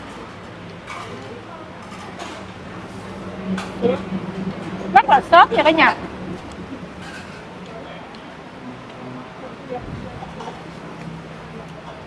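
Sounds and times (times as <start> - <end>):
indistinct background chatter: 0.0 - 12.0
steady low hum: 2.3 - 11.6.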